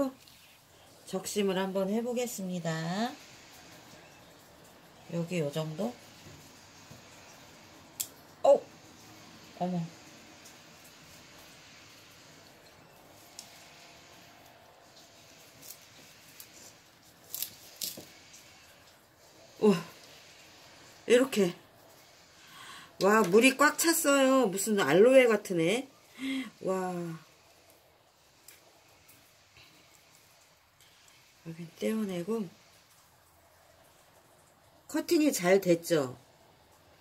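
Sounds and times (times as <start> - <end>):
knife crunching through succulent stem: 17.2 - 18.1.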